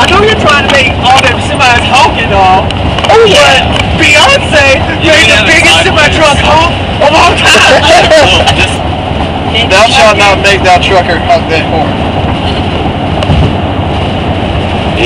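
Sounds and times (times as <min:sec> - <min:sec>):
people talking and laughing: 0:00.0 - 0:12.9
road and engine noise: 0:00.0 - 0:15.0.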